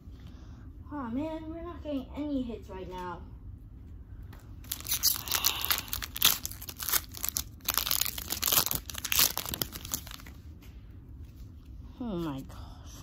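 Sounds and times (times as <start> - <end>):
foil wrapper crinkling and tearing: 4.6 - 10.4.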